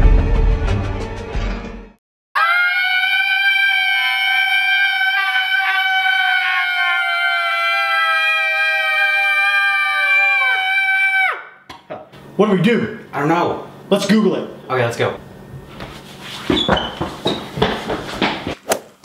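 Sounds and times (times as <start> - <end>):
people screaming high-pitched: 2.4 - 11.5.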